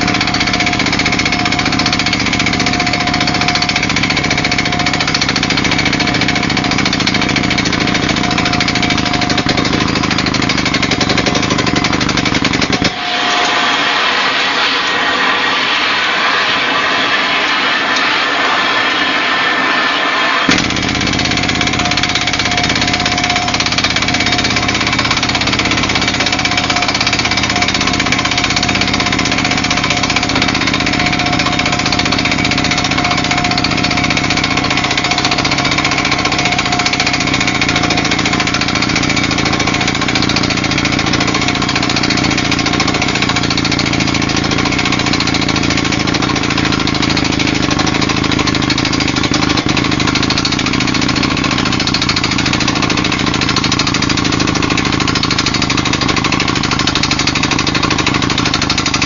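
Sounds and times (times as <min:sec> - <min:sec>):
constant machine hum: 0:00.0 - 0:59.0
drill rig running: 0:00.0 - 0:59.0.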